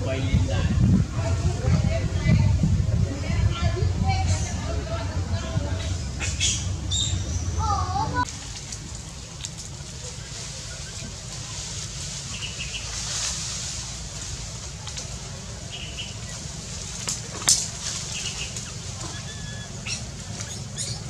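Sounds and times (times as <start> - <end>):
low rumble: 0.0 - 21.0
steady forest hiss: 1.4 - 21.0.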